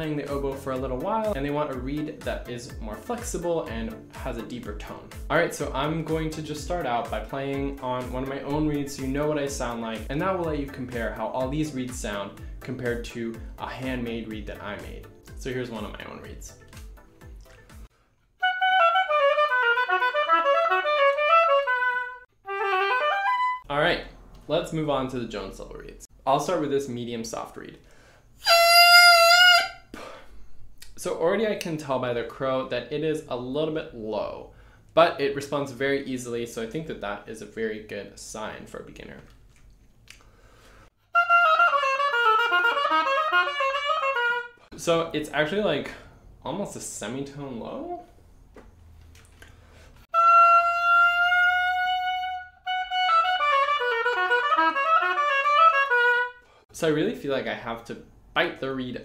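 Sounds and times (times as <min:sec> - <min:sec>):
oboe playing: 0:18.4 - 0:23.7, 0:28.4 - 0:30.0, 0:41.0 - 0:44.7, 0:50.1 - 0:56.5
oboe reed crowing: 0:28.4 - 0:29.9.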